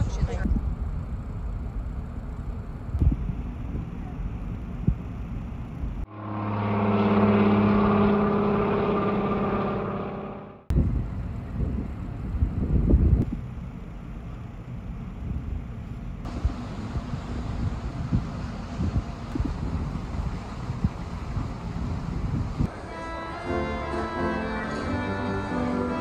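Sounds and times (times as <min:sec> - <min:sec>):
propeller plane engine drone: 0:00.0 - 0:26.0
wind buffeting microphone: 0:10.7 - 0:13.6, 0:15.2 - 0:22.8.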